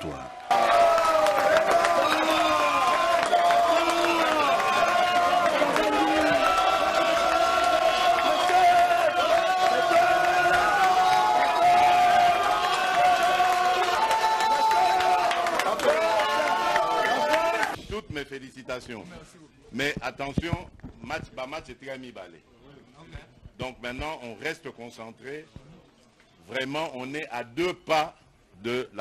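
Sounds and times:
hand-clapping: 0:00.4 - 0:17.8.

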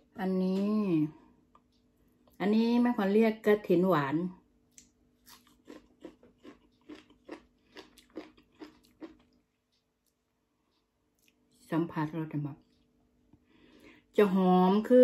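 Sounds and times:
faint steady hum: 0:00.0 - 0:15.0
person chewing: 0:04.7 - 0:11.6.

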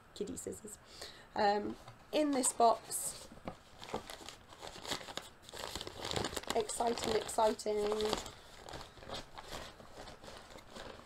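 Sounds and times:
tissue paper rustling: 0:02.2 - 0:11.0.

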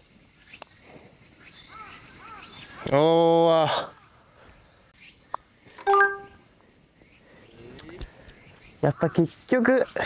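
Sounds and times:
faint high insect hum: 0:00.0 - 0:10.0
short loud steady tone: 0:05.9 - 0:06.4.

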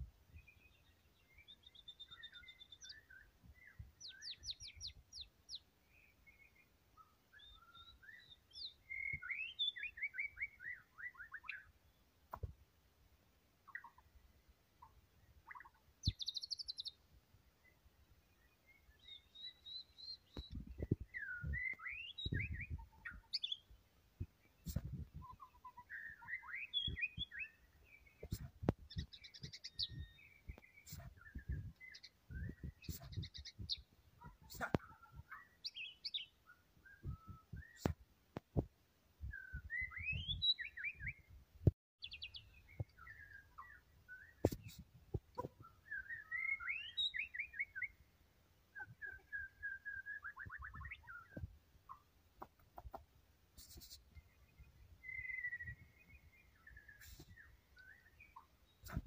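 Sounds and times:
bird singing whistles and trills: 0:01.3 - 0:11.7, 0:18.6 - 0:23.7, 0:24.6 - 0:33.9, 0:34.6 - 0:38.0, 0:39.2 - 0:41.3, 0:45.6 - 0:48.0, 0:48.8 - 0:51.5, 0:53.6 - 0:59.0.

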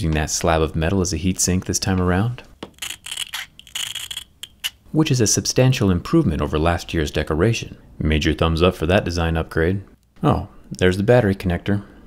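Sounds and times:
metal tool small clicks: 0:02.7 - 0:04.8
metal tool rasping scrape: 0:02.8 - 0:04.8.

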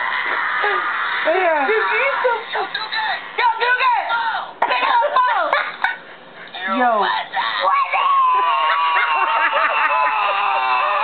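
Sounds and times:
bursts of laughter: 0:08.2 - 0:11.0.

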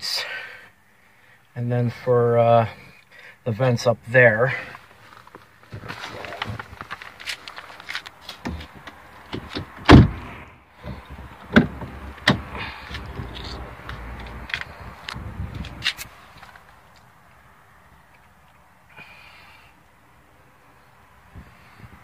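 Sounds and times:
rustle: 0:04.3 - 0:08.8
car doors and trim knocking: 0:08.4 - 0:13.4
heavy thump: 0:09.4 - 0:13.4.

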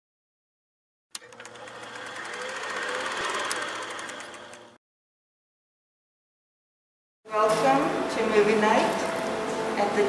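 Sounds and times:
film projector clatter: 0:01.2 - 0:04.8.

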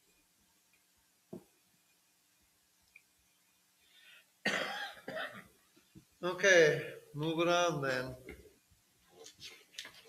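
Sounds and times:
faint breath: 0:03.8 - 0:04.4
person coughing: 0:04.5 - 0:05.5.

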